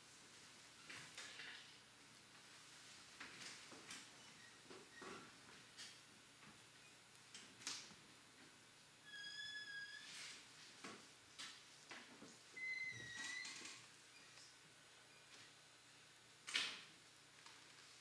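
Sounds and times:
whistle-like tones: 12.6s - 13.6s.

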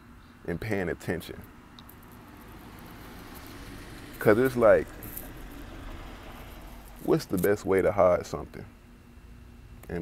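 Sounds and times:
faint low rush background noise: 0.2s - 10.0s.

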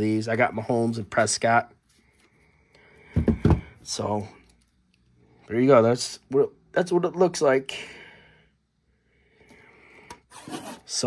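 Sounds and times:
plastic wrap rubbing and scraping: 10.3s - 11.0s.

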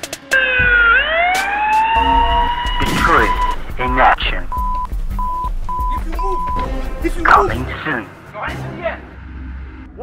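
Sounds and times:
emergency siren wailing: 0.3s - 3.6s.

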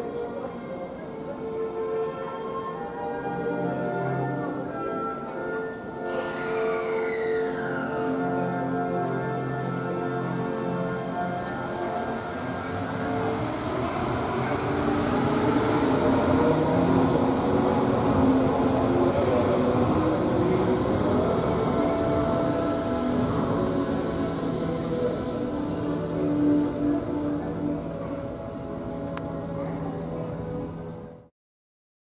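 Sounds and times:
monorail train rolling rumble: 0.0s - 31.3s.

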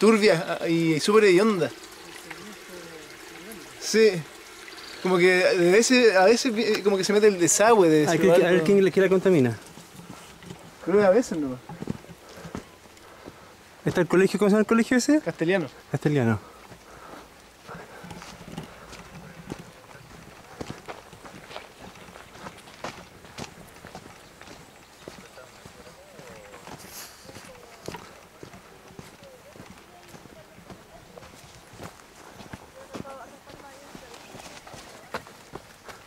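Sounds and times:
footsteps on dirt trail: 6.2s - 14.5s, 15.2s - 36.0s
faint voices: 25.0s - 36.0s.

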